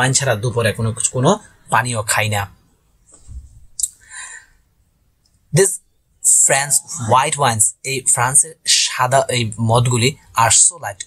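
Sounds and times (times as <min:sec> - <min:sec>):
man's voice: 0:05.5 - 0:11.0.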